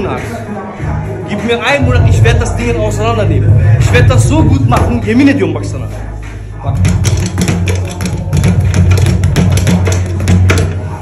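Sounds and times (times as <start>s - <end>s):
speed bag rattling hits: 6.8s - 10.8s.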